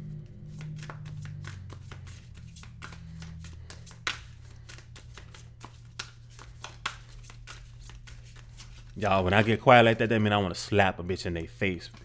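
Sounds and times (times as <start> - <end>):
cards being shuffled: 0.1 - 10.2, 11.6 - 12.0.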